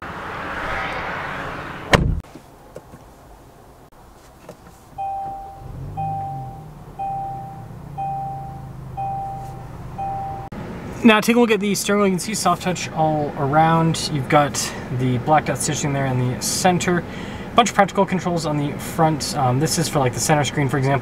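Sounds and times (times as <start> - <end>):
car door shutting: 1.8 - 2.3
car engine starting and idling: 4.9 - 11.0
two-note warning chime: 5.0 - 10.5.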